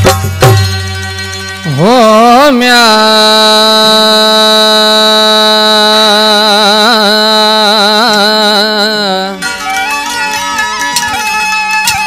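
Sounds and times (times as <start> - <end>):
man singing a long note: 1.7 - 9.4.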